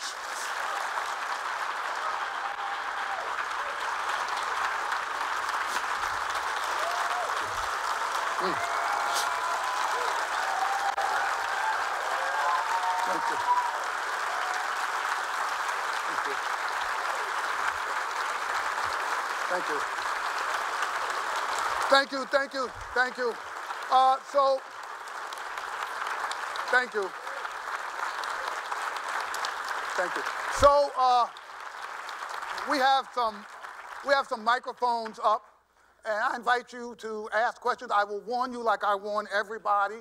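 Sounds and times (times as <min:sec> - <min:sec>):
large audience applauding: 0:00.0 - 0:35.4.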